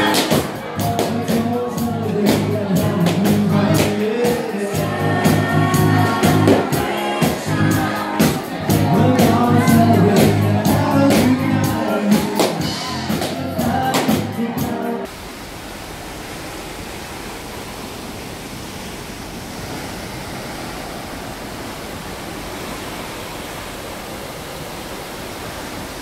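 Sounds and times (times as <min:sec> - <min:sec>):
live band music with singing: 0:00.0 - 0:15.1
sea and wind rushing: 0:15.1 - 0:26.0.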